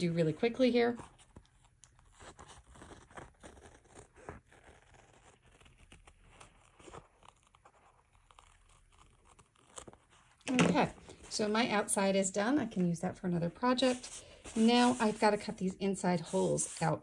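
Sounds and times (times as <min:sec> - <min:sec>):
scissors cutting fabric: 0:01.3 - 0:10.9.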